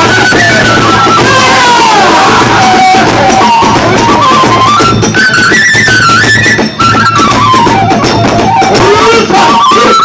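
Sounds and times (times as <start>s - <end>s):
bamboo flute melody: 0.0s - 10.0s
barrel drum beat: 0.0s - 10.0s.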